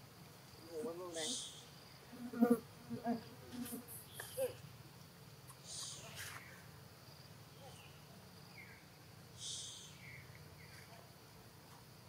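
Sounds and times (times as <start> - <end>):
insects buzzing: 0.0 - 12.0.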